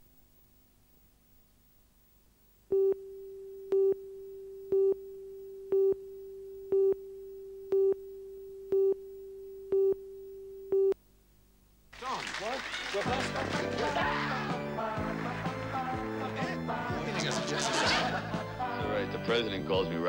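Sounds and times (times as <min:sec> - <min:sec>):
electronic beeps: 0:02.7 - 0:11.0
steady electronic tone: 0:02.7 - 0:11.0.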